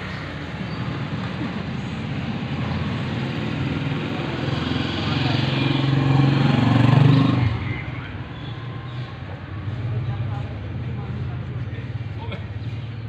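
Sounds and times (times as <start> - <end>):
vehicle engine passing by: 0.0 - 13.0.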